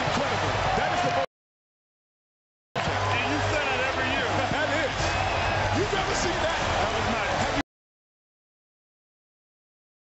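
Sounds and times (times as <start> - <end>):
crowd cheering and screaming: 0.0 - 1.3, 2.8 - 7.6.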